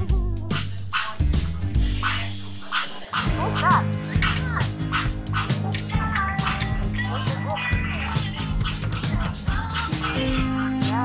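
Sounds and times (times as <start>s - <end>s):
background music with beat: 0.0s - 11.0s
toy dog barks: 3.2s - 7.9s.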